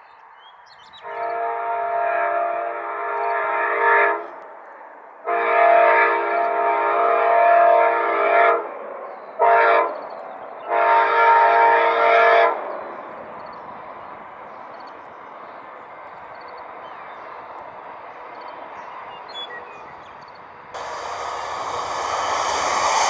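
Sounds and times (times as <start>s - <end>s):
train air horn blasts: 1.0s - 4.4s, 5.2s - 8.7s, 9.4s - 10.0s, 10.7s - 12.6s, 20.8s - 23.0s.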